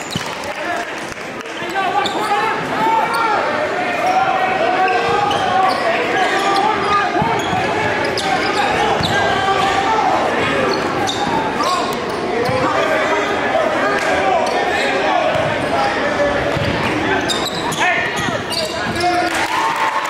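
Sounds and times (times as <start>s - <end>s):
crowd shouting and chattering: 0.0s - 20.0s.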